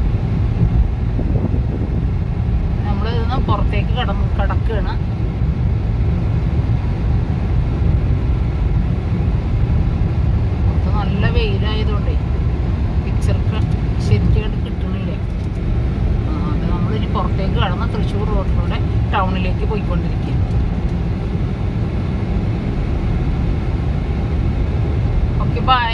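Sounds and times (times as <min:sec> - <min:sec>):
car engine and tyres rumbling: 0:00.0 - 0:25.9.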